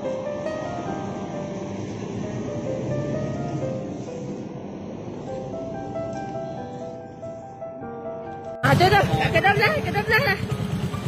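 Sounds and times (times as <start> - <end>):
vehicle engines rumbling: 0.0 - 11.0
people talking: 8.6 - 10.4.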